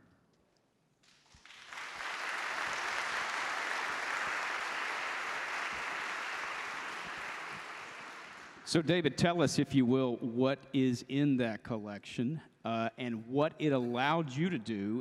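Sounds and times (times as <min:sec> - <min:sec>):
audience applauding: 0:01.1 - 0:08.8.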